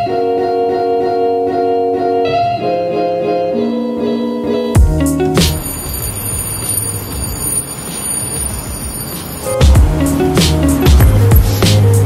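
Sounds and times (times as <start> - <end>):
city street rumble and hiss: 2.5 - 12.0.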